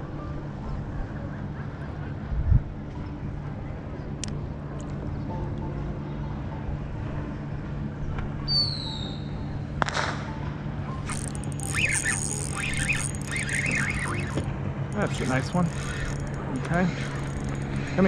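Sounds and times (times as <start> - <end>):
motorboat engines humming: 10.9 - 18.0
fishing reel whirring: 11.0 - 18.0
falling bird whistle: 11.1 - 14.4.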